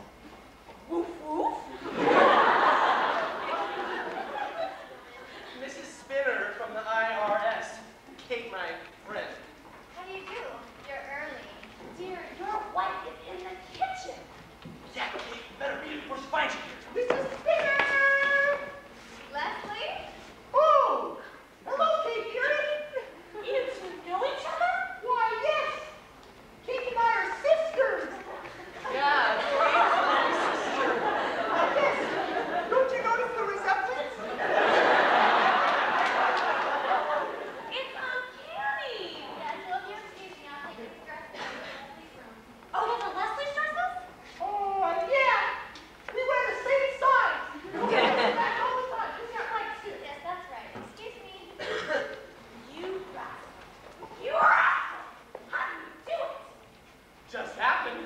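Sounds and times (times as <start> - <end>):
crowd chatter: 26.8 - 50.0.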